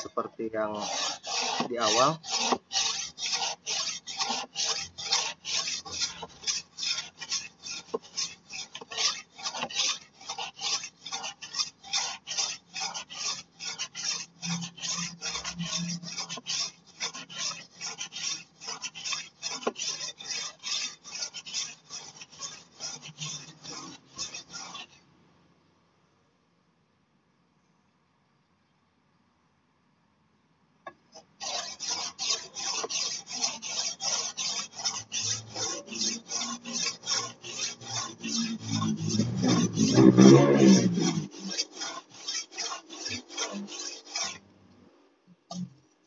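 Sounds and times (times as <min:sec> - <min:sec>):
blade rasping on whetstone: 0:00.0 - 0:25.0, 0:31.2 - 0:44.5, 0:45.5 - 0:45.8.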